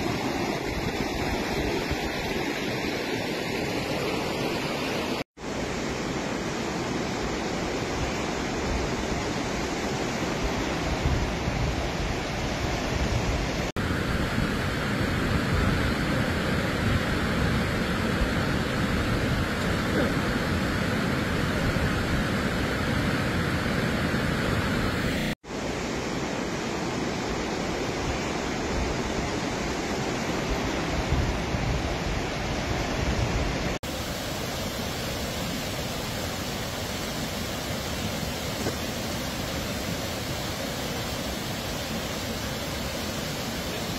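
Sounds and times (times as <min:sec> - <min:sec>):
floodwater rushing: 0:00.0 - 0:33.0, 0:33.6 - 0:43.9.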